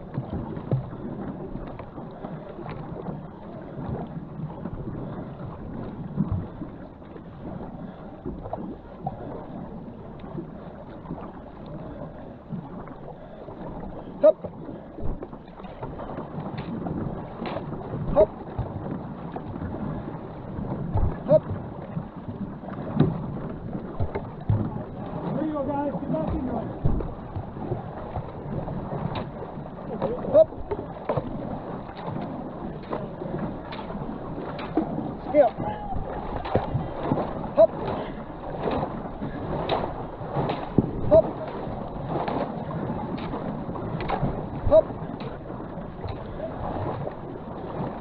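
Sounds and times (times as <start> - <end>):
water splashing along canoe hull: 0.0 - 48.0
short knocks and thumps: 26.1 - 27.5.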